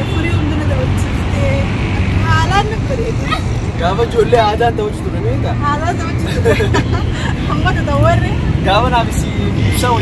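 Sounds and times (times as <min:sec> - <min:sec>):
two people talking: 0:00.0 - 0:10.0.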